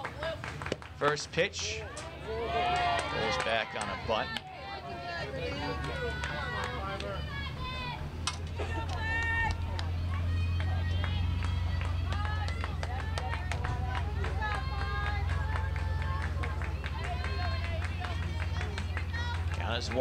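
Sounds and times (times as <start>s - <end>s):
steady low hum: 0.4s - 20.0s
players and spectators cheering: 1.0s - 20.0s.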